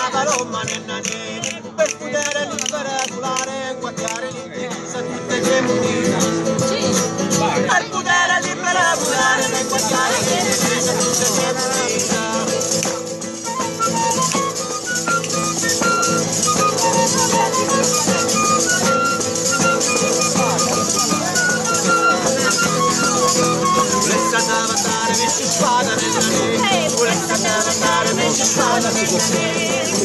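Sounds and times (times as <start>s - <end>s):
acoustic guitar strummed: 0.0s - 30.0s
person singing: 7.7s - 13.0s, 23.1s - 30.0s
clarinet melody: 13.4s - 25.2s.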